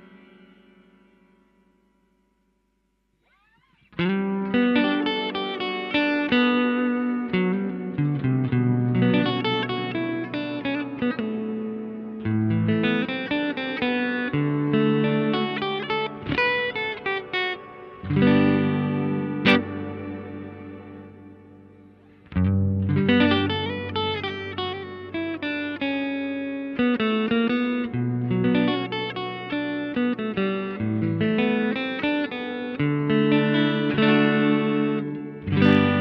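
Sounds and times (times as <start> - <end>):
electric guitar with reverb: 0.0 - 36.0.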